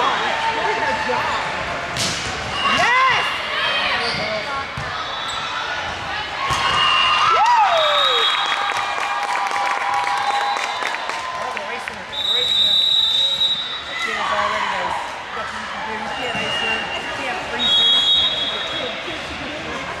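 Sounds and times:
sneakers squeaking on court: 4.0 - 5.6
volleyball hits: 6.4 - 7.4
players' voices: 11.1 - 20.0.

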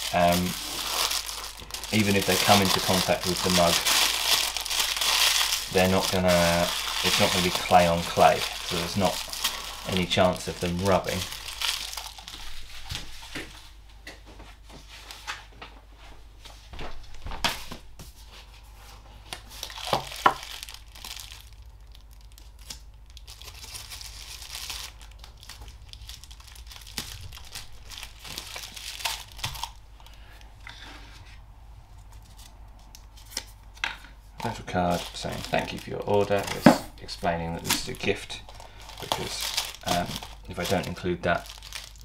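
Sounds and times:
paper tearing: 0.0 - 11.2
tissue paper crinkling: 0.0 - 13.4, 19.4 - 29.8, 34.4 - 36.6, 37.2 - 42.0.

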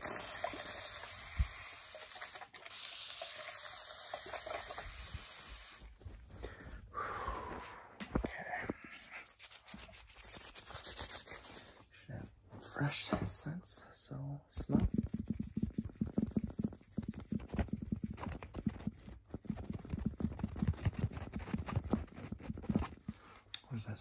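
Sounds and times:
spray bottle hissing: 2.7 - 5.9.

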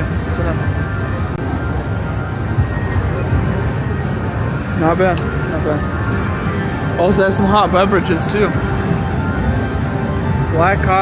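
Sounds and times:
background music: 0.0 - 11.0
casino crowd din: 0.0 - 11.0.

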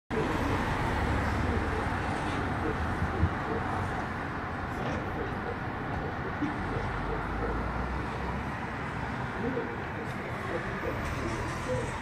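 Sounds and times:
urban traffic rumble: 0.1 - 12.0.

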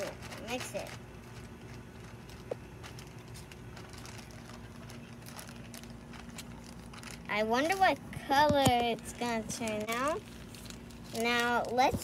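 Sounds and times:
plastic bag crinkling: 0.0 - 12.0
steady low hum: 0.0 - 12.0.

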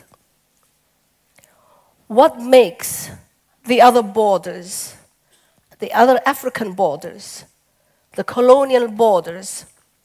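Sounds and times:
faint intake of breath: 1.4 - 2.0.

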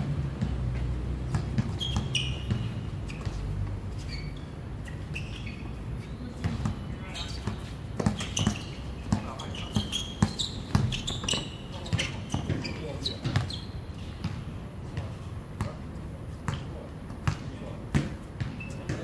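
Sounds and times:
basketball bouncing on hard court: 0.3 - 3.5, 6.4 - 15.8, 16.5 - 19.0.

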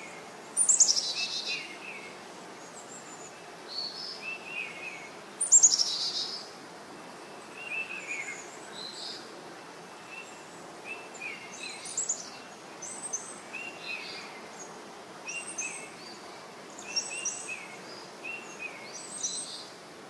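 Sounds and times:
small birds chirping: 0.0 - 19.9
soft background hiss: 0.0 - 20.0.

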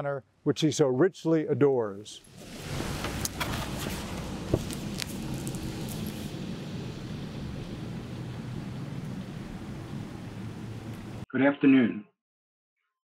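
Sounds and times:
low outdoor rumble: 2.2 - 11.2.

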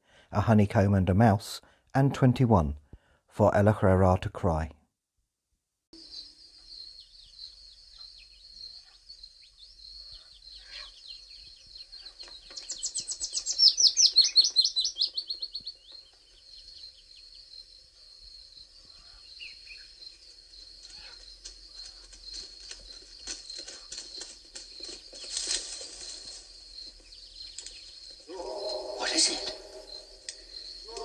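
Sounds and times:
songbird rapid trill: 6.0 - 17.6
birdsong chorus: 6.0 - 31.0.

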